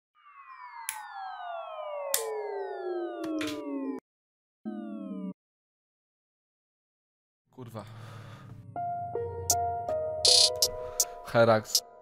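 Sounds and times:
falling siren-like synth tone: 0.2s - 4.0s, 4.6s - 5.4s
trap beat: 10.3s - 10.8s.

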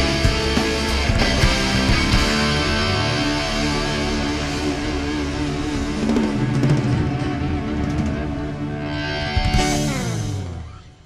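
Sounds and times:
drum-kit hits: 0.0s - 8.6s
bass: 0.0s - 11.0s
electric guitar and keyboard: 0.0s - 11.0s.

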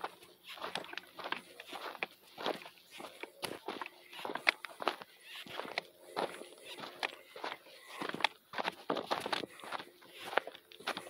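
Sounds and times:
footsteps crunching on gravel: 0.0s - 11.0s.

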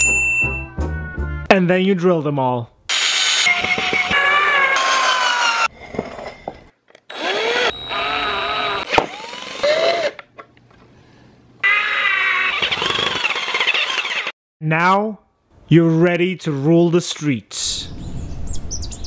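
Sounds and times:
power drill driving screws: 2.9s - 5.7s, 7.1s - 10.2s, 11.6s - 14.3s.

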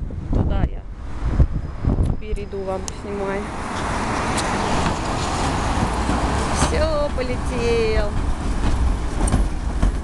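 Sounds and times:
tram rolling by: 0.0s - 10.0s
car driving past: 2.9s - 7.0s.

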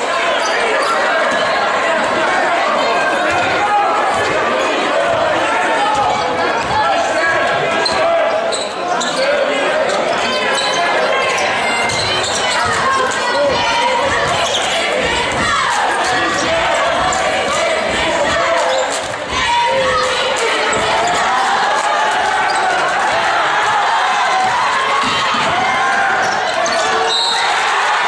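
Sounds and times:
crowd chatter and shouts: 0.0s - 28.0s.

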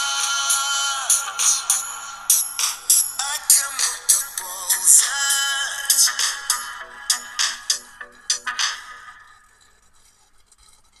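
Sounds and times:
background music: 0.0s - 9.8s.

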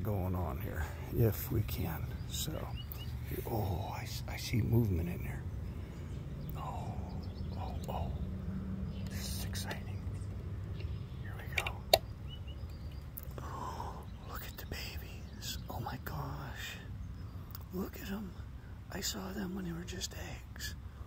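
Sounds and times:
soft whispering: 0.1s - 5.4s, 6.5s - 10.3s, 11.2s - 11.9s, 13.3s - 16.9s, 17.7s - 20.8s
breathing close to microphone: 5.6s - 6.3s
sharp wooden click: 11.5s - 13.1s.

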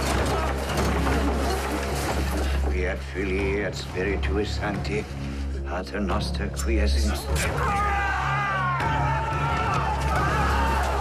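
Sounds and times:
low droning music: 0.0s - 11.0s.

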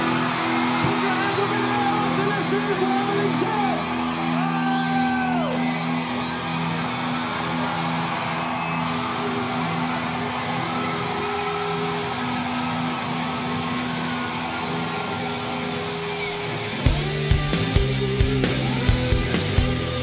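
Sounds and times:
crowd cheering and whooping: 0.0s - 20.0s.

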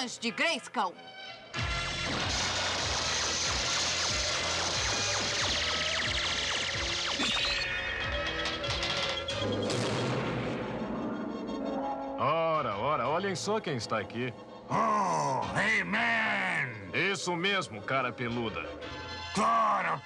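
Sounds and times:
dramatic background music: 0.0s - 20.0s
crackling electric bolts: 1.6s - 10.6s
crashing blasts: 1.6s - 11.2s.

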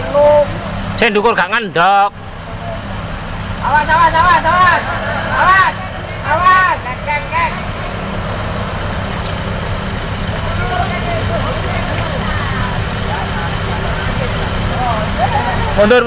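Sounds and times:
diesel engine running at low revs: 0.0s - 16.0s
men shouting: 0.0s - 16.0s.

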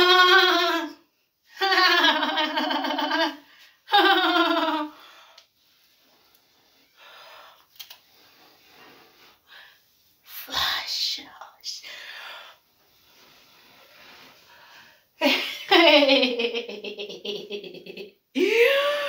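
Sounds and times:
woman whispering and breathing: 10.3s - 12.6s.

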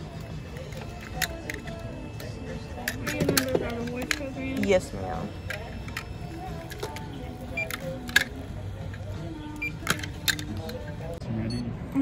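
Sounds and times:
background music: 0.0s - 12.0s
plastic hangers clicking: 9.8s - 10.9s.

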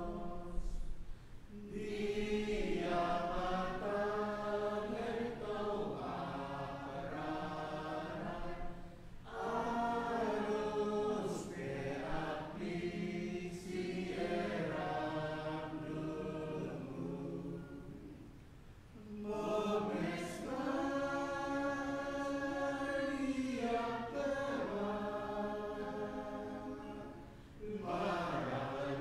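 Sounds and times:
congregation singing a hymn: 0.0s - 29.0s.

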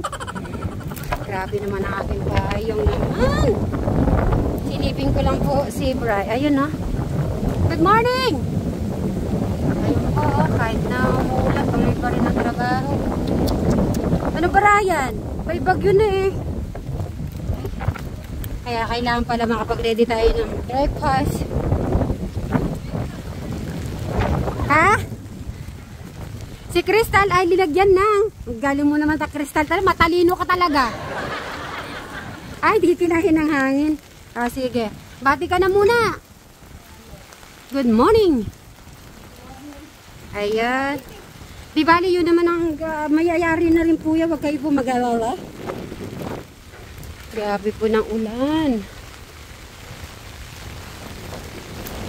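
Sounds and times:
heavy rain: 0.0s - 52.0s
wind buffeting microphone: 0.0s - 52.0s
woman saying ha: 1.2s - 3.6s.

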